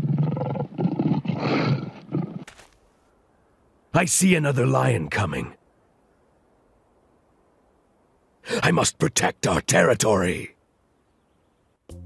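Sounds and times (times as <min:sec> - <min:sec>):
lion roaring: 0:00.0 - 0:02.5.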